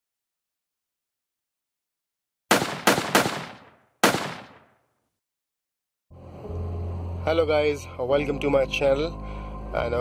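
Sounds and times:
gunshots with echoing tail: 2.5 - 4.8.

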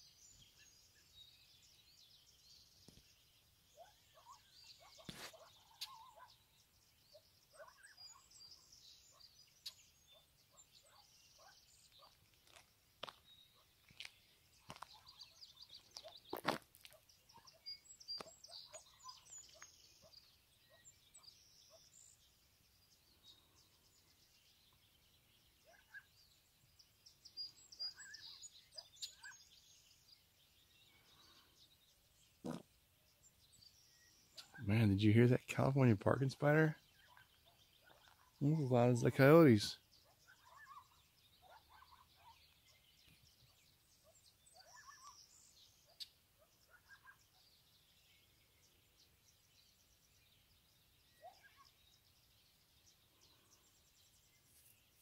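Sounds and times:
faint high bird chirps: 0.0 - 31.8, 32.4 - 55.0.

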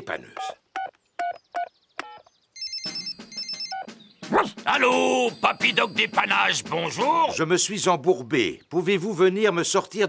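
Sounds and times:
keypad beep: 0.8 - 3.9
high electronic ringtone trilling: 1.2 - 4.0, 5.3 - 6.6.

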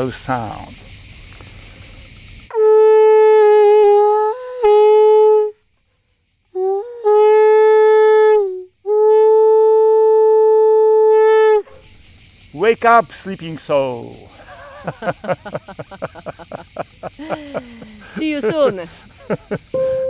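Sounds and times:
conch shell horn blasts: 2.5 - 5.6, 6.5 - 11.7, 19.7 - 20.0.

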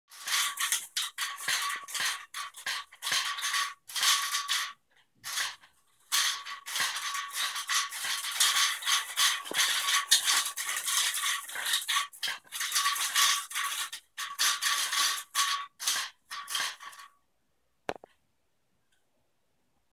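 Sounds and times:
beaded curtain fringe rattling: 0.1 - 17.2.

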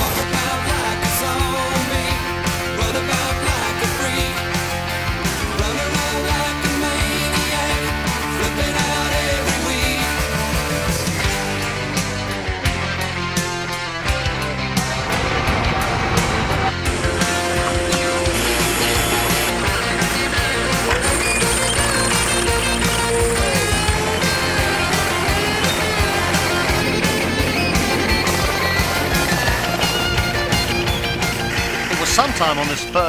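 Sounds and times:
rock music with guitars: 0.0 - 33.0.

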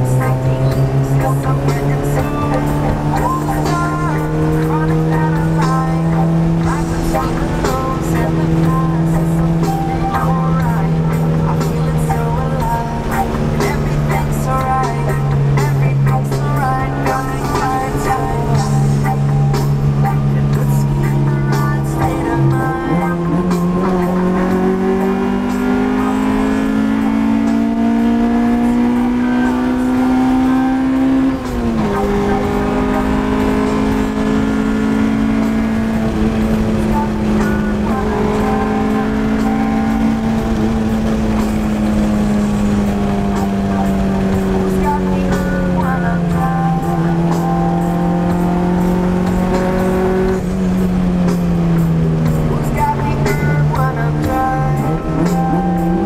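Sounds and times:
car engine accelerating: 0.0 - 56.0.

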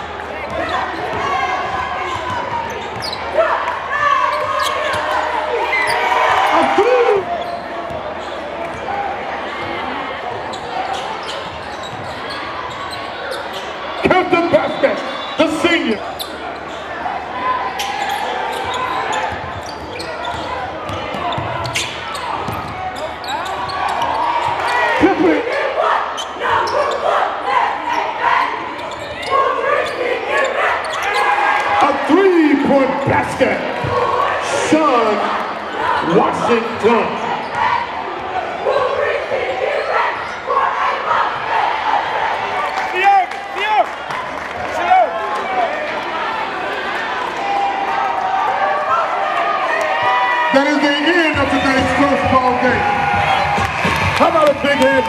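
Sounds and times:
crowd voices and shouts: 0.0 - 55.0.

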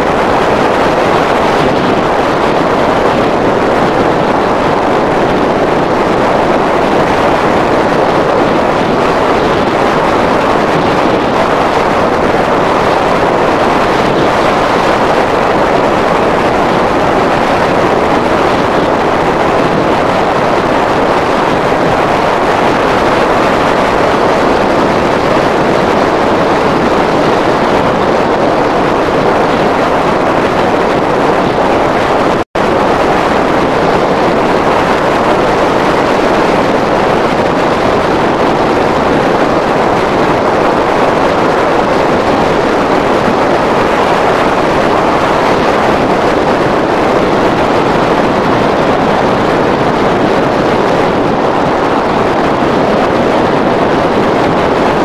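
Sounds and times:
wind noise on microphone: 0.0 - 55.0.

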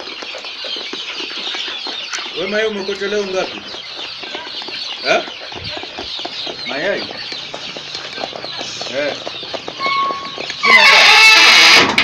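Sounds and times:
chickens clucking and cheeping: 0.0 - 12.0
loud falling chicken call: 9.8 - 12.0.

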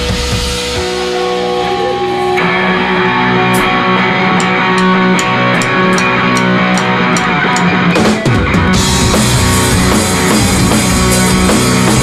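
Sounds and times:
bass guitar: 0.0 - 12.0
distorted electric guitar: 0.0 - 12.0.

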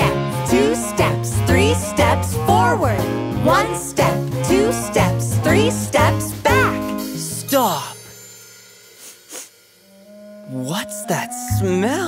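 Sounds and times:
breathy sound effect: 8.9 - 9.6.

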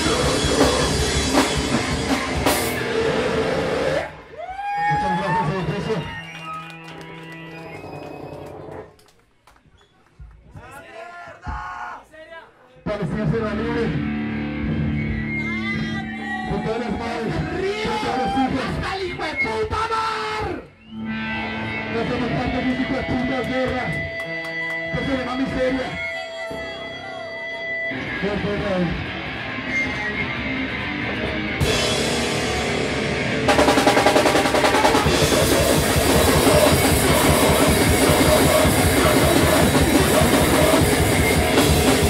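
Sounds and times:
live rock band: 0.0 - 4.3, 13.5 - 18.0, 20.8 - 42.0.

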